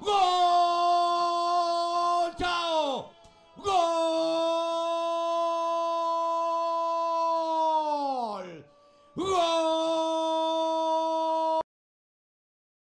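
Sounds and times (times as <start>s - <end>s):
man shouting long goal cry: 0.0s - 11.6s.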